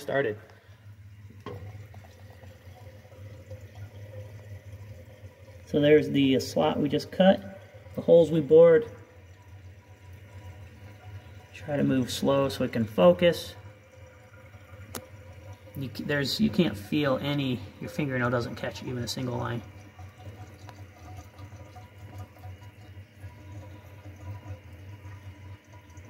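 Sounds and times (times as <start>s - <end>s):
low machine hum: 0.0s - 26.0s.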